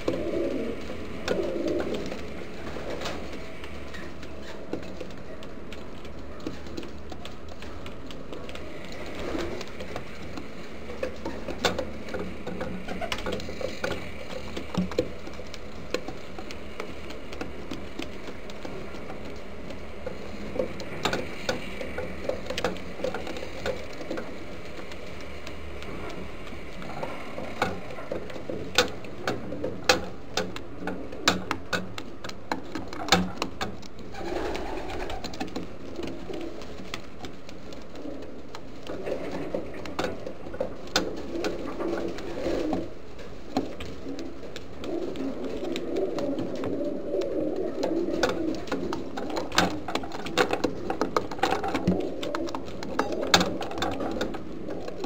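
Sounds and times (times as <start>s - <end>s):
pigeons cooing: 0.0s - 55.0s
sharp taps and clicks: 0.0s - 55.0s.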